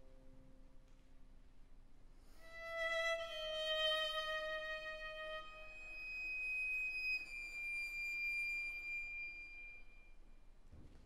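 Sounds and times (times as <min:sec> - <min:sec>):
viola high sustained note: 0:02.4 - 0:10.5.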